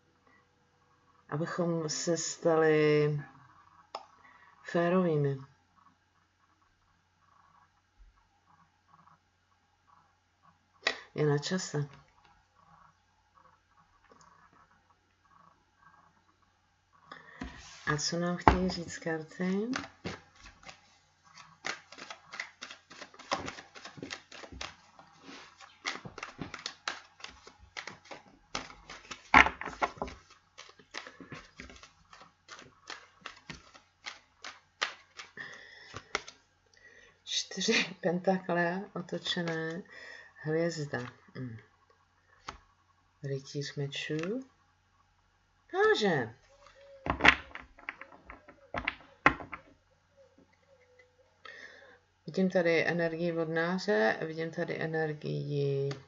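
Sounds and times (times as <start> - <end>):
cards being shuffled: 17.4 - 36.4, 39.2 - 39.8.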